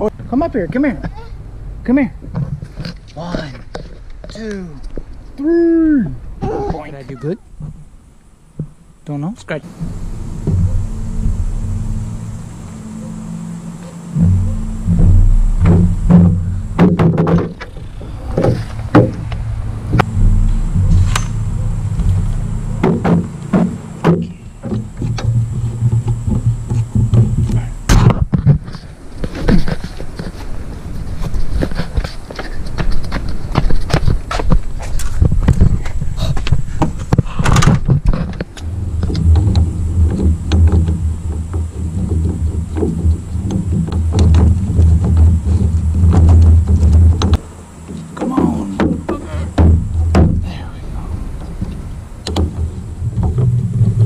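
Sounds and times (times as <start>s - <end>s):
low uneven rumble: 0.0s - 54.0s
knocks and clunks of metal crossbar: 14.2s - 28.7s, 36.5s - 50.5s, 51.4s - 54.0s.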